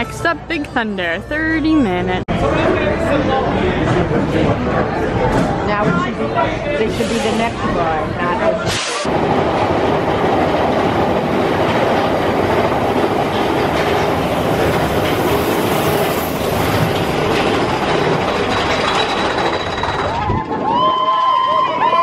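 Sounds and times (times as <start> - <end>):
roller coaster rattling on track: 9.1 - 22.0.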